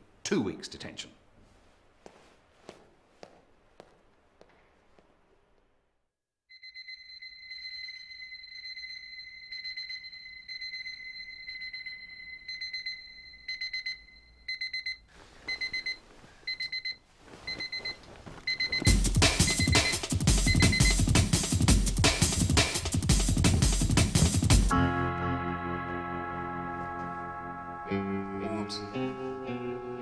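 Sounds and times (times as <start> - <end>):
alarm clock beeping: 6.5 - 21.1
drum-led music: 18.9 - 25.6.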